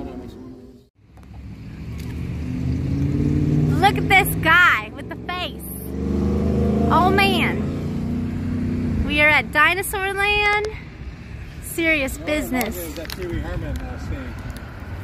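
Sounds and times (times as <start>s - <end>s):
vehicle engine rumble: 0.0s - 15.0s.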